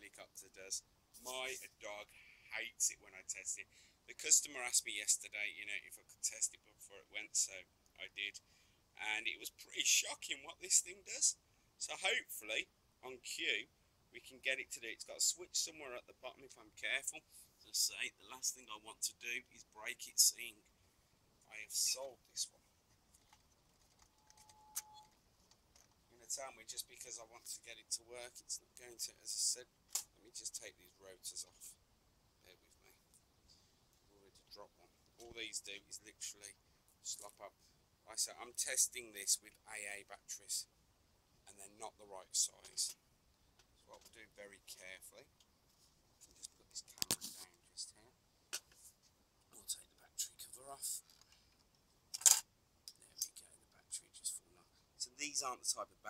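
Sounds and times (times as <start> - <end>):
faint high tone: 24.2 - 25.1.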